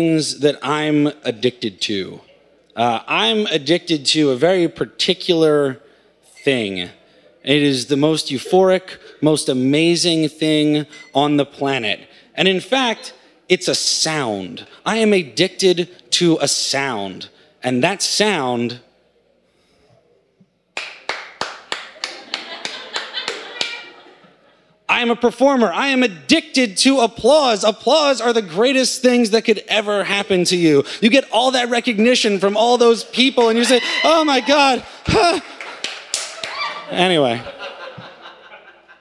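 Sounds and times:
man clapping: 20.8 - 23.7, 35.0 - 36.6
man laughing: 33.6 - 35.6.

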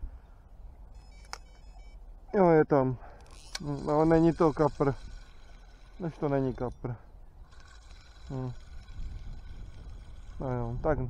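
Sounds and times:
fishing rod handling noise: 3.2 - 6.1
fishing reel whirring: 3.2 - 11.0.

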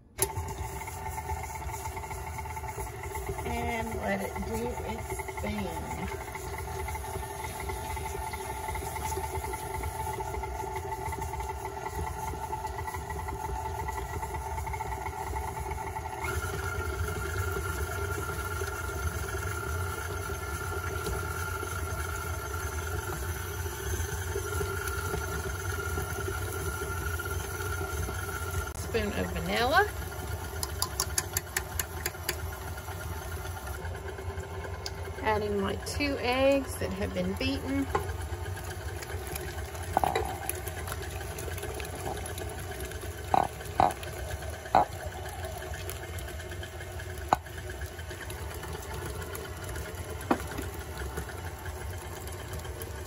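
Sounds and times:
stand mixer motor running: 0.0 - 53.0.

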